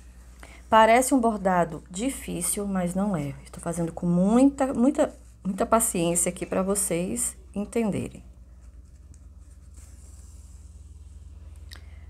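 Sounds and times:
steady low hum: 0.0 - 12.0
yarn rubbing and scratching: 8.4 - 10.9.

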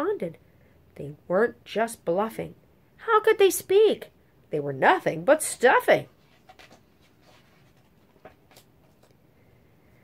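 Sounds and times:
book page turning: 6.2 - 9.2.

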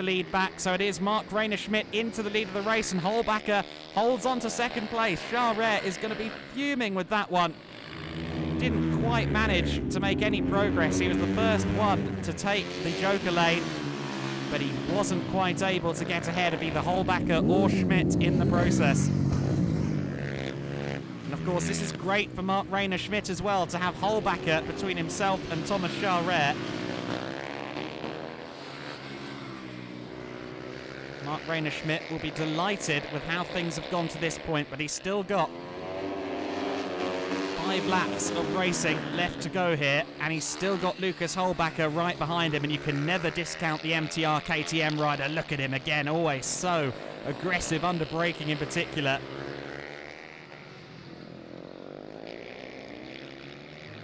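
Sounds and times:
racing motorcycle engines: 0.0 - 54.0.

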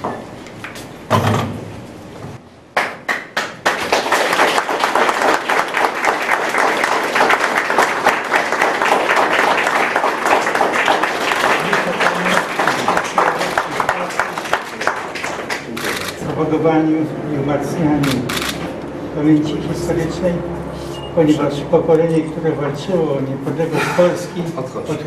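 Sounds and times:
hand claps: 2.7 - 15.8
crowd applauding: 2.8 - 16.2.

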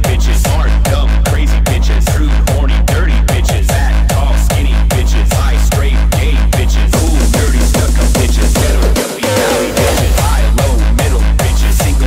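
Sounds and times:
hardstyle dance music: 0.0 - 12.0
heavy kick drum: 0.0 - 12.0.

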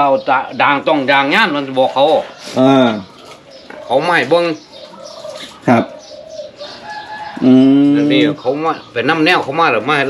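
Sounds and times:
faint bird calls: 2.2 - 9.4.

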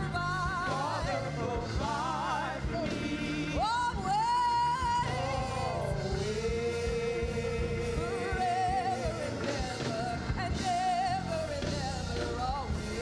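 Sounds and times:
lead singer with vibrato: 0.0 - 13.0
women singing gospel: 0.0 - 13.0.

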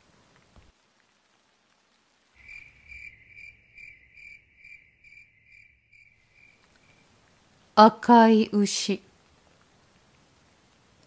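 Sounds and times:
cricket chirping: 2.4 - 7.1.

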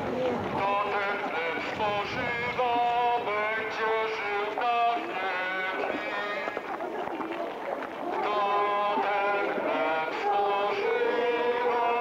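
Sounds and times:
people singing a hymn: 0.6 - 6.6, 8.0 - 12.0.

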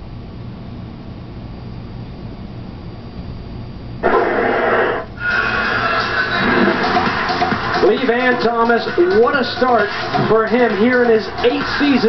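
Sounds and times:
loud noisy television burst: 4.0 - 9.1.

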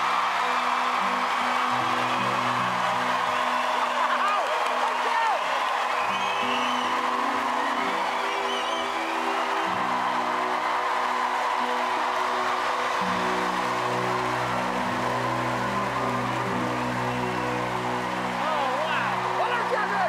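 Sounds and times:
audience applauding and cheering: 0.0 - 20.0
whoops from audience: 0.0 - 20.0.

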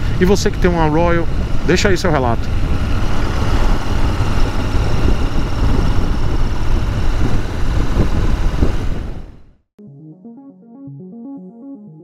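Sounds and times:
motorcycle engine running: 0.0 - 9.4
wind rushing on microphone: 0.0 - 9.5.

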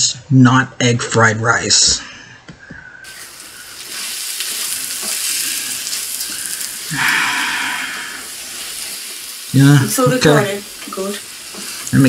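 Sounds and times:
wooden spoon stirring: 3.1 - 6.8
rice and egg sizzling in wok: 3.1 - 12.0.

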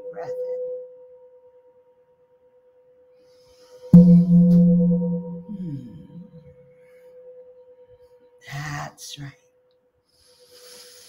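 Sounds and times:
singing bowl ringing: 4.0 - 6.4.

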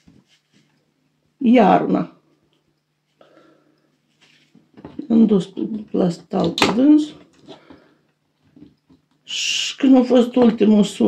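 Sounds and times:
woman speaking: 1.4 - 2.2, 5.0 - 7.3, 9.3 - 11.0.

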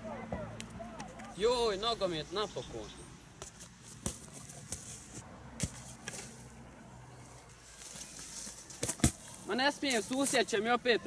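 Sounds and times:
football thudding onto grass: 3.4 - 5.0, 8.8 - 9.3.

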